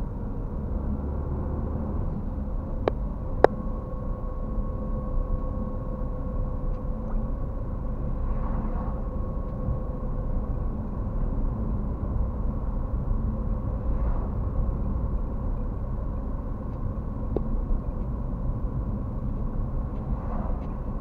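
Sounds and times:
car engine and tyre rumble: 0.0s - 21.0s
faint steady tone: 1.9s - 21.0s
cars swishing past: 19.9s - 21.0s.

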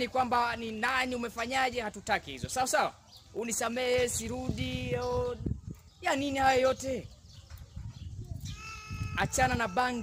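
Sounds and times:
faint outdoor background noise: 0.0s - 10.0s
farm animal bleating: 8.4s - 10.0s.

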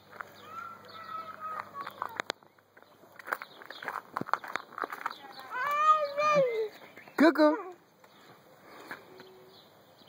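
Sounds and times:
footsteps on dry leaves: 0.0s - 7.1s
baby girl yelling gibberish: 5.5s - 6.7s.

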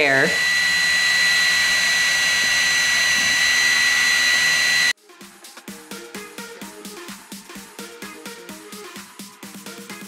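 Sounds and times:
high-pitched whine: 0.0s - 5.0s.

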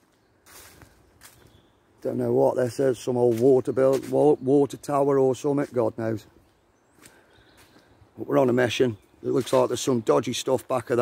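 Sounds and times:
footsteps on leaves: 0.0s - 4.4s, 5.6s - 8.0s, 8.7s - 11.0s.

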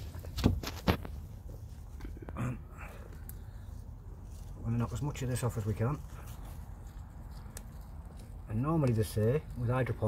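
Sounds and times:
potting soil rustling: 0.0s - 10.0s.

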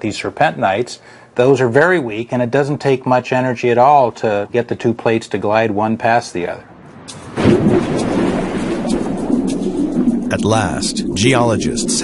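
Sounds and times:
low thunder-like rumble: 6.6s - 12.0s.

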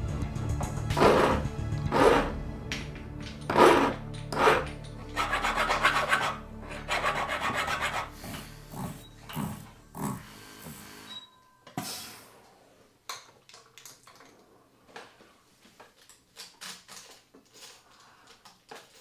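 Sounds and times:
file rasping on metal ring: 3.5s - 8.4s.

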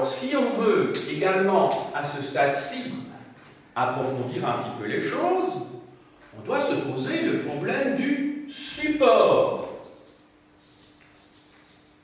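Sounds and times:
chalk scratching on blackboard: 9.6s - 12.0s.

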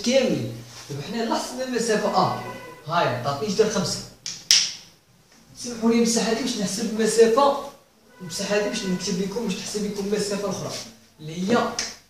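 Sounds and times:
man's voice: 0.0s - 4.1s, 5.6s - 11.9s
marker clicks: 4.2s - 4.9s.

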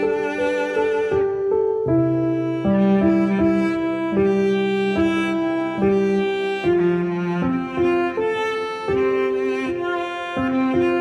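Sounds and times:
gentle bowed string music: 0.0s - 11.0s.

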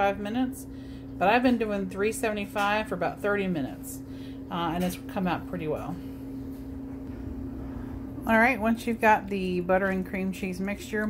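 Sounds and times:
appliance electrical hum: 0.0s - 11.0s
faint rumble: 3.6s - 9.8s.

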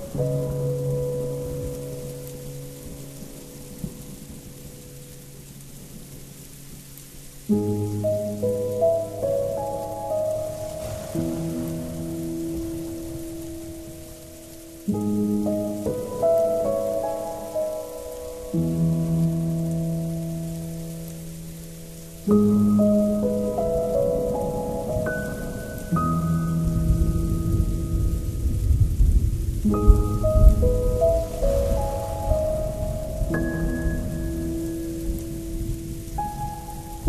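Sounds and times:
rain hiss: 0.0s - 37.0s
soft piano chords: 0.0s - 37.0s.

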